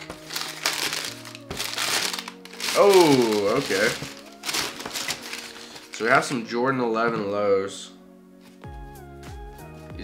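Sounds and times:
tissue paper rustling: 0.0 - 6.4
soft background music: 0.0 - 10.0.

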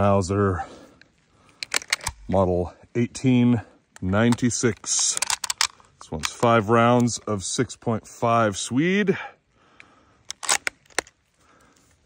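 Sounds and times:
cartridges clicking into rifle magazine: 1.5 - 2.3, 4.0 - 6.6, 10.3 - 11.2.

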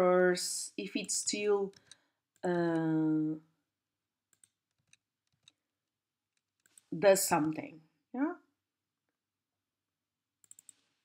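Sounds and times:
keyboard and mouse clicks: 1.7 - 2.0, 4.3 - 5.6, 6.3 - 6.9, 10.4 - 11.0.

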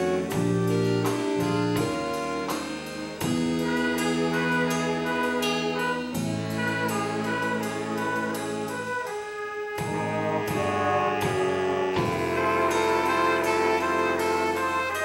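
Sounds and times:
jazz big band playing: 0.0 - 15.0.

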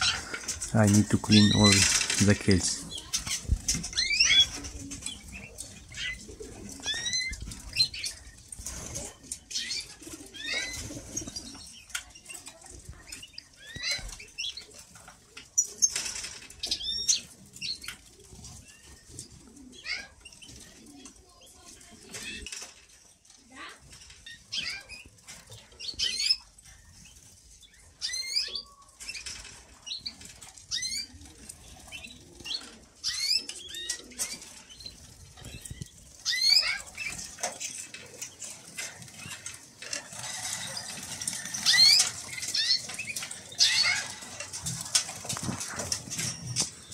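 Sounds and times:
canaries chirping: 0.0 - 46.9
wings flapping and rustling: 0.0 - 46.9.

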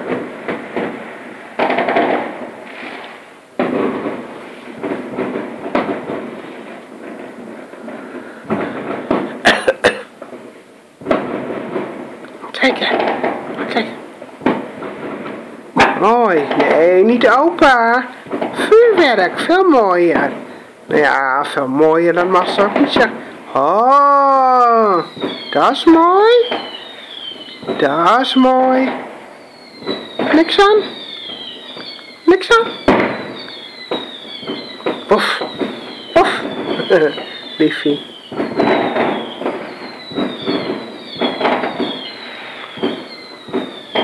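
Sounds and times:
firework bang: 0.0 - 44.0
fireworks crackling: 0.0 - 44.0.

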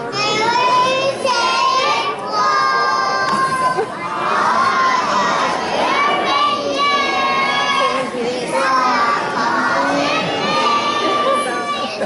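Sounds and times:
children shouting together: 0.0 - 12.0.

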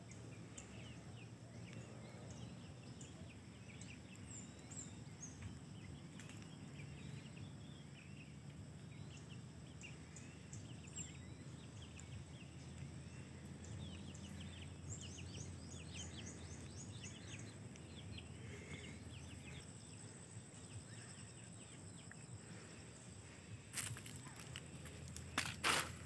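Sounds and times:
low outdoor rumble: 0.0 - 26.0
small birds chirping: 0.0 - 26.0.

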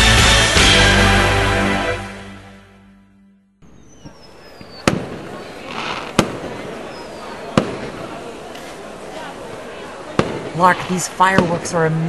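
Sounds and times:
title music: 0.0 - 3.6
firework bangs: 4.0 - 8.6, 9.5 - 11.8.

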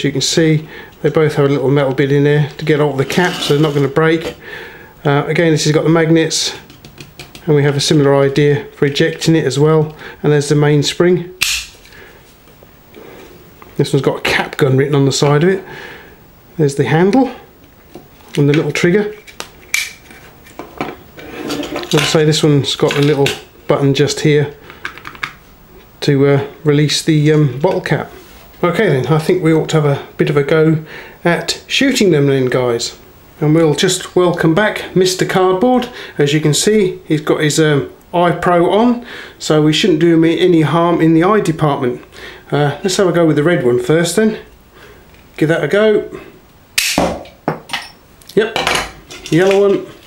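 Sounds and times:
bottle cap gun snapping: 11.4 - 11.8, 46.8 - 47.3.

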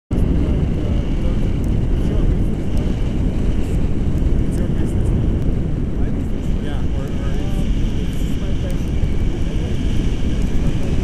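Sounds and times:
wind rushing over microphone: 0.1 - 11.0.

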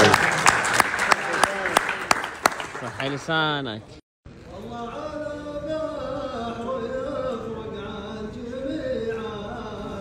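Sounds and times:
men clapping: 0.0 - 3.6.

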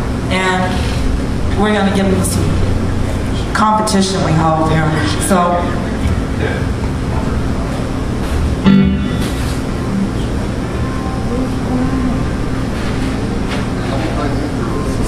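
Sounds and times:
crowd chatter: 1.6 - 15.0
live band through pa: 7.0 - 13.7.

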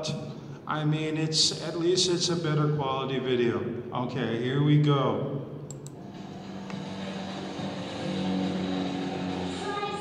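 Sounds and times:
low drone: 6.0 - 9.7.

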